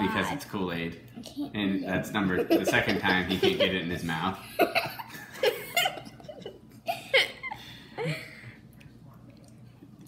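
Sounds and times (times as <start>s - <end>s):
people laughing: 2.4s - 8.4s.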